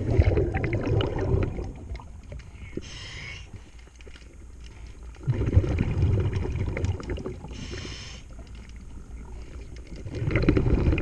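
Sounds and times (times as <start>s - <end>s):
exhale bubbling underwater: 0.0s - 2.4s, 5.2s - 8.1s, 9.0s - 11.0s
regulator hissing inhale: 2.5s - 3.8s, 7.5s - 8.4s.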